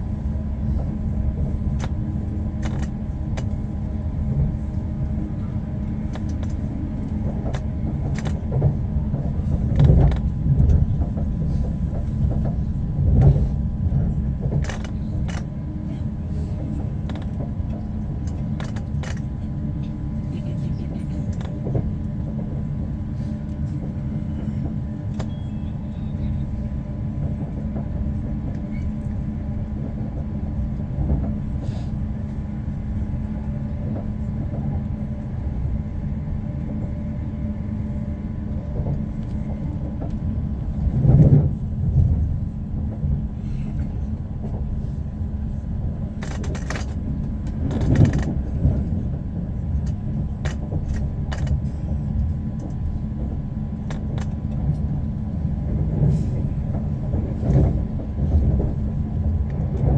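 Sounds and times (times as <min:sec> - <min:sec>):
train rumble with low hum: 0:00.0 - 0:59.9.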